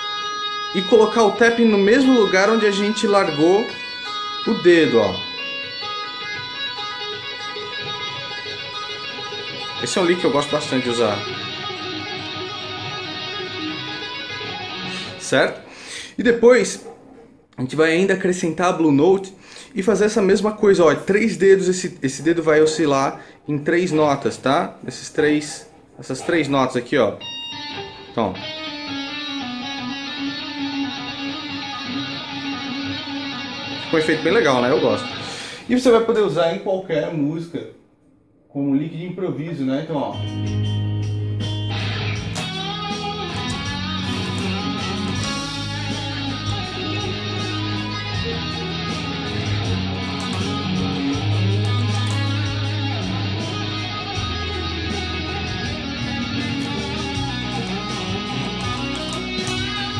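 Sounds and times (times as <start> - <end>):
electric guitar tapping lick: 1.6 - 15.2, 27.2 - 35.5, 40.3 - 59.9.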